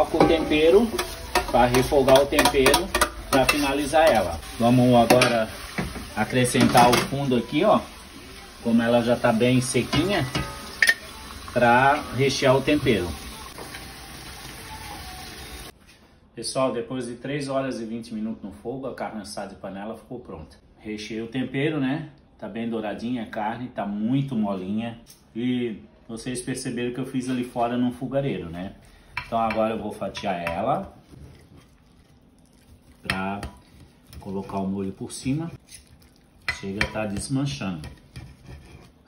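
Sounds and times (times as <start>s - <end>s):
food sizzling in a pot: 0.0s - 15.8s.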